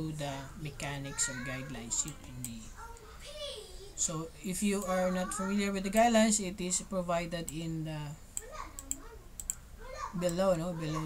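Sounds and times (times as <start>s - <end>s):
sharp computer clicks: 2.0s - 2.6s, 7.4s - 7.7s, 8.3s - 10.4s.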